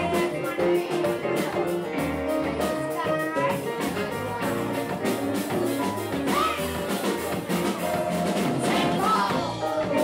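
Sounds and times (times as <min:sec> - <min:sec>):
drum kit: 0:00.0 - 0:10.0
electric guitar: 0:00.0 - 0:10.0
live blues band playing: 0:00.0 - 0:10.0.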